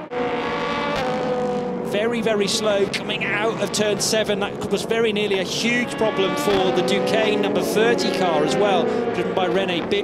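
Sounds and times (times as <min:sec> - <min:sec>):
race car engine at high revs: 0:00.0 - 0:10.0.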